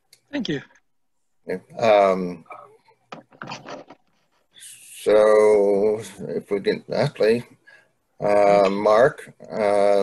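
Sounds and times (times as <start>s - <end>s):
person speaking: 1.4s - 10.0s.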